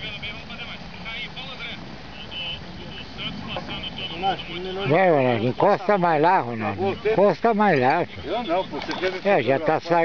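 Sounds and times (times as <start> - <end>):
low background murmur: 0.0 - 10.0
small birds chirping: 1.4 - 10.0.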